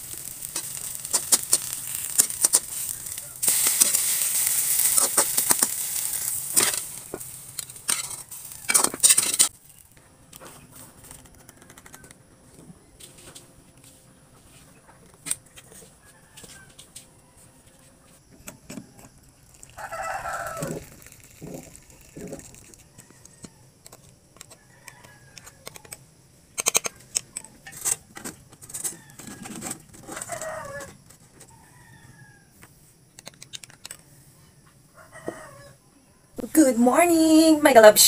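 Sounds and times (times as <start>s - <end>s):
eggs sizzling in oil in a wok: 0.0s - 9.9s, 19.2s - 23.4s
metal spatula scraping a pan: 0.5s - 9.6s
rooster crowing: 15.8s - 17.9s, 19.6s - 21.0s, 24.6s - 25.9s, 28.8s - 32.6s, 34.9s - 35.8s.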